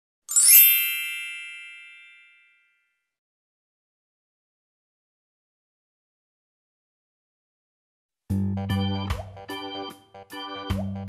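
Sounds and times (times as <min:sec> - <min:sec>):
bright chime ringing: 0:00.3 - 0:02.8.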